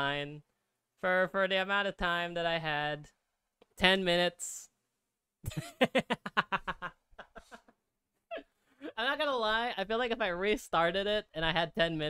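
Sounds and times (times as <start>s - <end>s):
man laughing: 5.4s - 9.1s.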